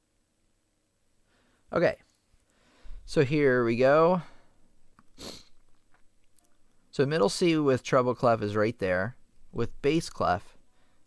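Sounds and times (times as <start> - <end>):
short breath: 1.2 - 1.7, 2.5 - 3.1, 4.2 - 5.6, 10.6 - 11.0.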